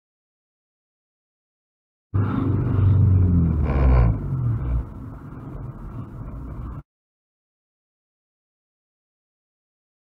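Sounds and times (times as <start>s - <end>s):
road noise: 2.1s - 6.8s
car engine rumble: 2.2s - 6.8s.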